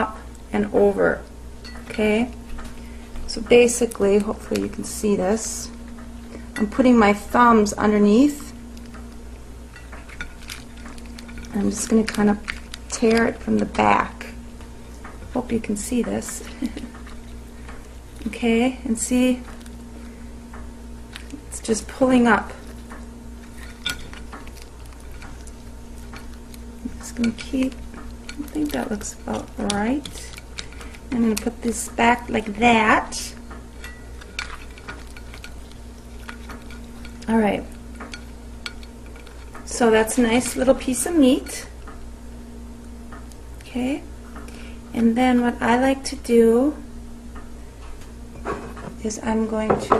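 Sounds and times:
steady low hum: 0:00.0 - 0:49.9
shell clicking and crackling: 0:08.7 - 0:13.8, 0:19.4 - 0:32.4, 0:33.3 - 0:40.6.

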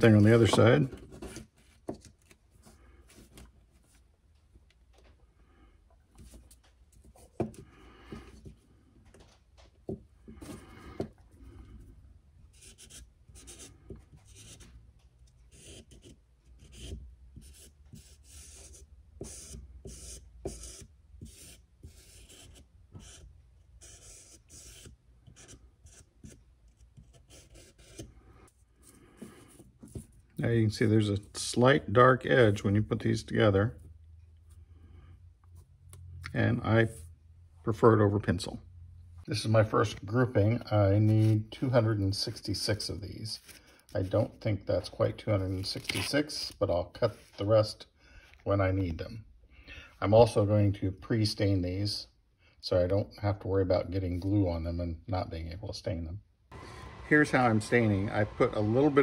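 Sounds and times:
marker scratching on wood: 0:12.5 - 0:30.2.

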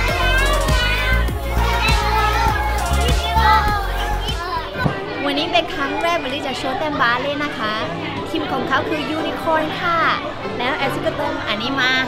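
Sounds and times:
background music: 0:00.0 - 0:12.0
young children chattering and playing: 0:00.0 - 0:12.0.

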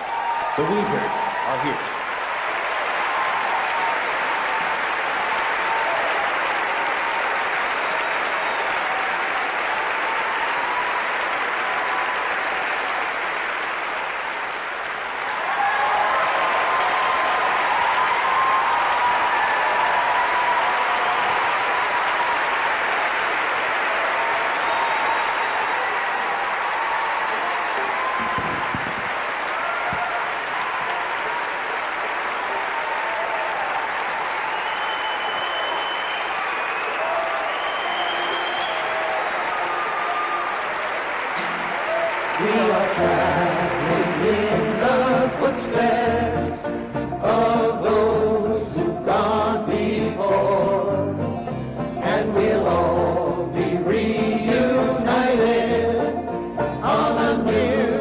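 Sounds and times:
large audience applauding: 0:00.0 - 0:58.0.

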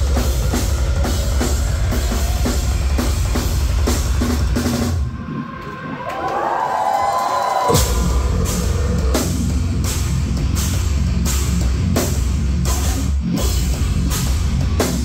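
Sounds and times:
heavy drums and bass: 0:00.0 - 0:05.6, 0:07.7 - 0:15.0
metal band playing live: 0:00.0 - 0:05.9, 0:07.7 - 0:15.0.

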